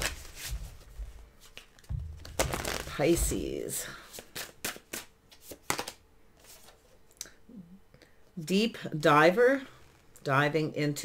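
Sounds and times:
cards being shuffled: 0:00.0 - 0:06.9.

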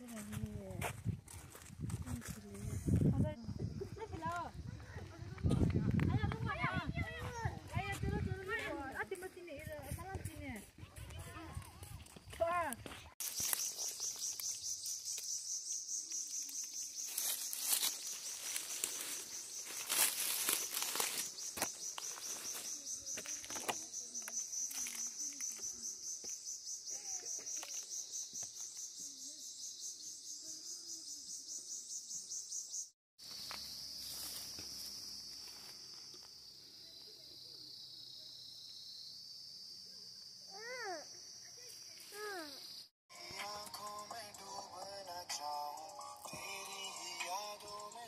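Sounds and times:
high-pitched insect buzzing: 0:13.2 - 0:36.0
lower insect drone: 0:13.2 - 0:44.7.

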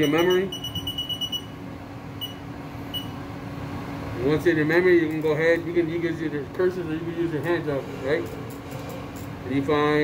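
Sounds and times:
short high keypad beeps: 0:00.0 - 0:01.6, 0:02.2 - 0:03.2
steady low hum: 0:00.0 - 0:10.0.

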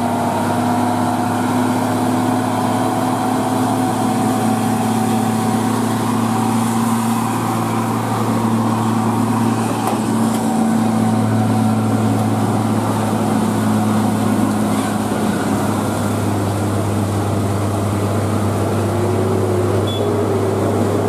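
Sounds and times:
truck diesel engine under load: 0:00.0 - 0:21.0.

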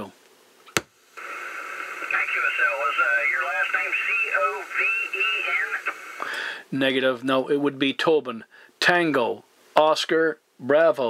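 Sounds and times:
radio static hiss: 0:00.9 - 0:07.5
distant voice over radio: 0:01.3 - 0:06.0.

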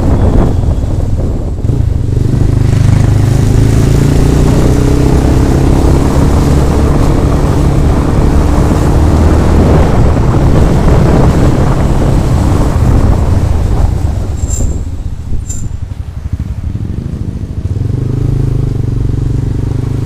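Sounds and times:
motorcycle engine running: 0:00.0 - 0:20.0
wind rumble on microphone: 0:00.0 - 0:20.0.

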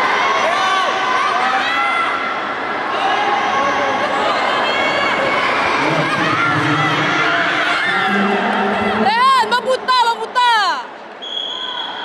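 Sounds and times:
spectators shouting and whooping: 0:00.0 - 0:09.8.

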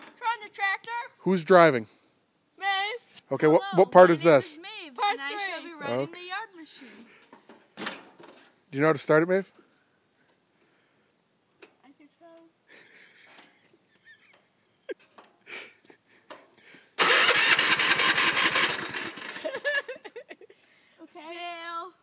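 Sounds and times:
electric starter cranking engine: 0:17.0 - 0:19.7.

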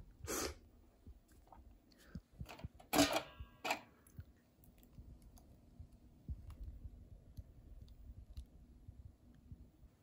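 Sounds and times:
soft low thumps: 0:05.0 - 0:10.0.

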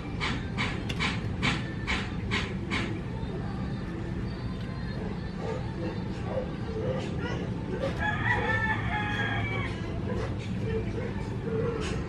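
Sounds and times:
steady low hum: 0:00.0 - 0:12.0
rooster crowing: 0:07.8 - 0:10.0.

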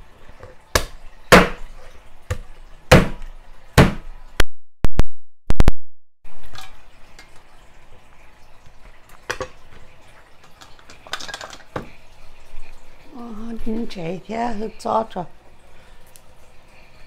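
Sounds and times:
knife chopping on wooden board: 0:00.8 - 0:01.7, 0:02.3 - 0:03.2, 0:03.8 - 0:04.1.

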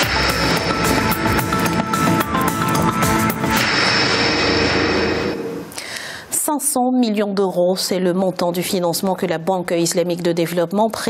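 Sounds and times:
news programme title music: 0:00.0 - 0:05.7.

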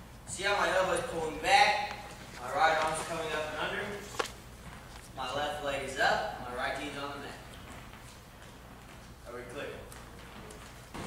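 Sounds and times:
gym room sound: 0:00.0 - 0:11.0
man speaking: 0:00.3 - 0:04.2, 0:09.2 - 0:09.9.

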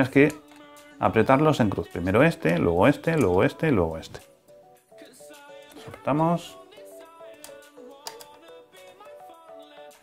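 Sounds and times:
light background melody: 0:00.0 - 0:10.0.

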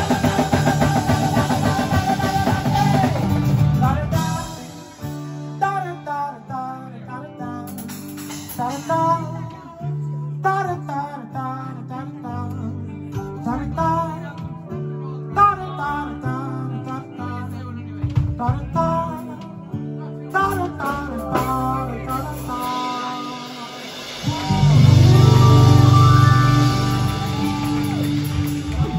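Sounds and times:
acoustic guitars strummed and plucked: 0:00.0 - 0:28.9
bass guitar: 0:00.0 - 0:28.9
sliding melody notes: 0:24.2 - 0:28.9.

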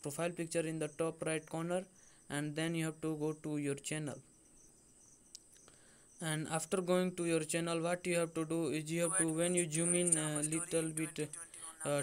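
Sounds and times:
man speaking: 0:00.0 - 0:04.2, 0:06.2 - 0:12.0
faint clicks: 0:05.3 - 0:05.8.

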